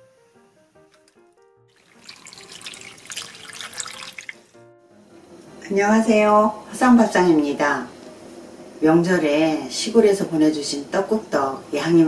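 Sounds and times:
running water splashing: 0.9s - 4.6s.

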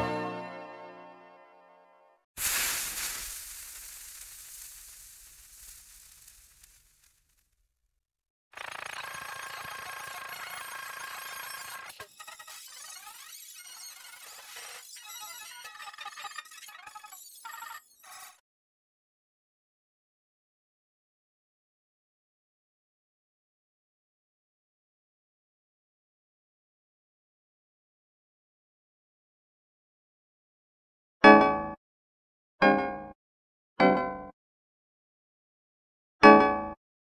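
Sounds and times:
ringing stuttering jingle: 8.6s - 18.4s.

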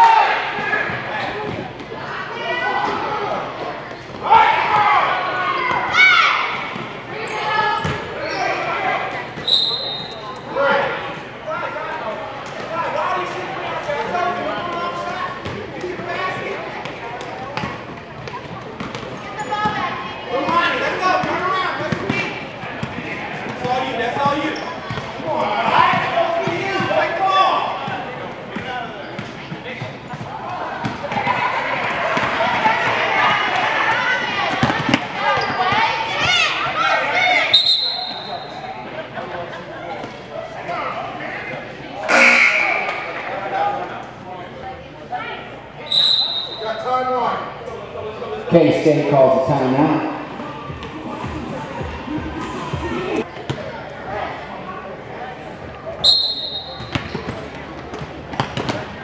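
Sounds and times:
shouts and chatter: 0.0s - 59.0s
shoe squeak: 9.4s - 10.4s, 19.2s - 19.8s, 24.4s - 24.9s, 35.3s - 35.8s, 56.0s - 57.2s.

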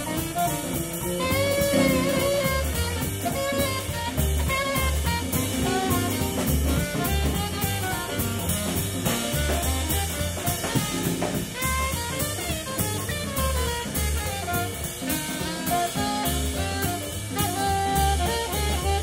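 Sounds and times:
jazz big band playing swing: 0.0s - 19.0s
saxophone line: 0.0s - 19.0s.

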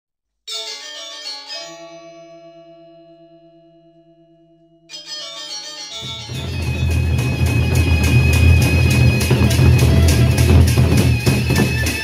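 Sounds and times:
bell-like jingle chimes: 4.9s - 12.0s.

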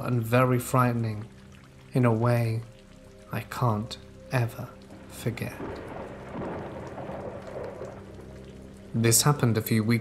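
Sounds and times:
steady rain falling: 0.0s - 10.0s
low rumble of thunder: 4.9s - 9.7s.

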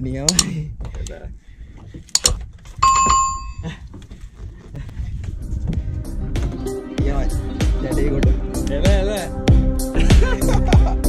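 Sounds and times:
sharp clicks: 0.3s - 1.2s, 2.1s - 2.4s
metallic bell ring: 2.8s - 3.6s.

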